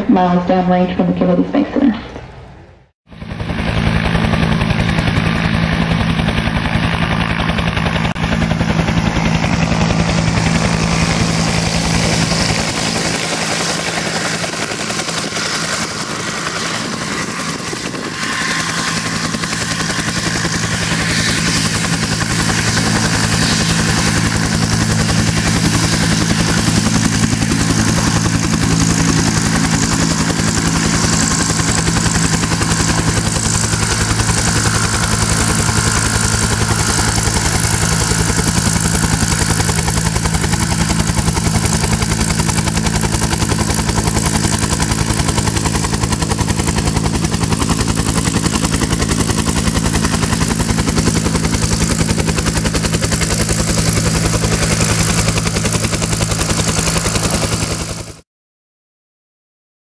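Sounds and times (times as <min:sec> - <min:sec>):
helicopter engine running: 0:00.0 - 0:58.2
helicopter rotor blades beating: 0:00.0 - 0:58.2.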